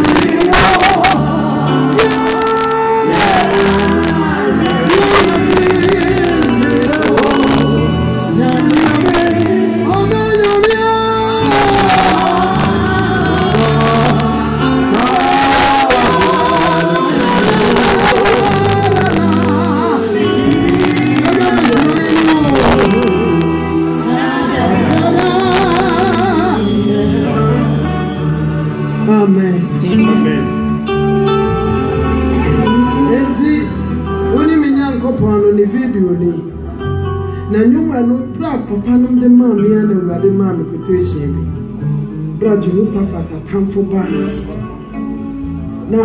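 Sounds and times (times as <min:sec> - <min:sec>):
woman singing gospel: 0:00.0 - 0:28.6
bass line: 0:00.0 - 0:46.0.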